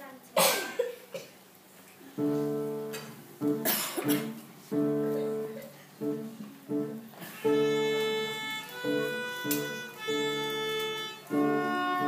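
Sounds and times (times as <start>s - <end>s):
audience member coughing: 0.4s - 1.3s, 3.6s - 4.4s
violin solo: 7.4s - 12.0s.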